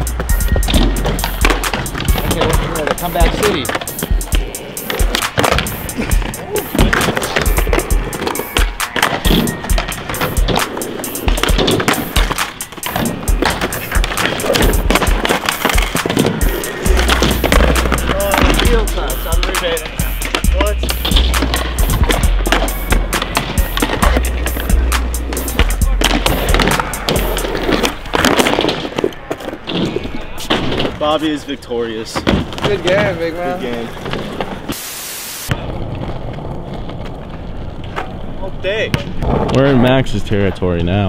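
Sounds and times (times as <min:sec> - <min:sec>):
hip-hop beat with heavy bass: 0:00.0 - 0:28.6
skateboard wheels rolling on concrete: 0:00.0 - 0:41.0.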